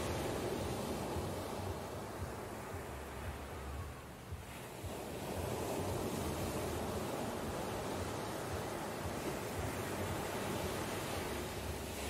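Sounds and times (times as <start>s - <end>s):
ocean surf breaking on beach: 0.0s - 12.0s.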